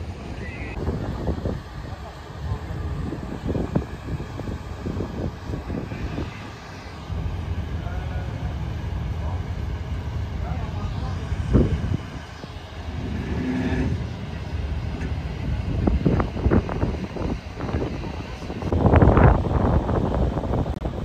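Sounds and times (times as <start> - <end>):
low steady rumble: 0.0 - 21.0.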